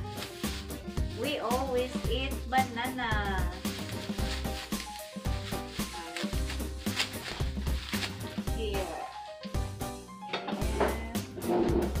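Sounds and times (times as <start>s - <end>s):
plastic bag crinkling: 0.0s - 9.4s
background music with steady beat: 0.0s - 12.0s.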